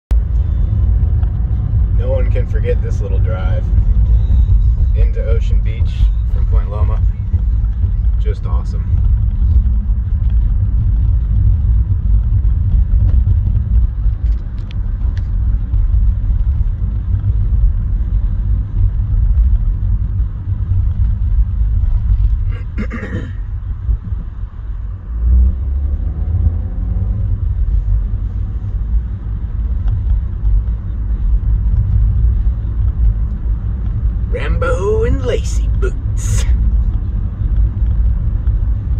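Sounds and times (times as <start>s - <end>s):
car interior rumble: 0.1s - 38.9s.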